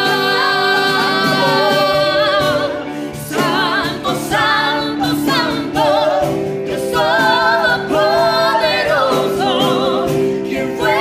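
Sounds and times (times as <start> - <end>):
keyboard: 0.0 - 11.0
people singing in harmony: 0.0 - 11.0.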